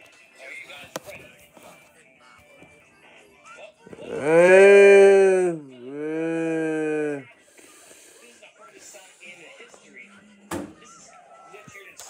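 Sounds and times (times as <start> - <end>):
cow mooing: 4.1 - 7.3.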